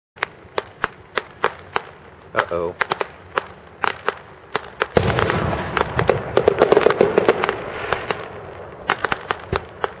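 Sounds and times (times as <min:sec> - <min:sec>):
firework pops and crackling: 0:00.2 - 0:10.0.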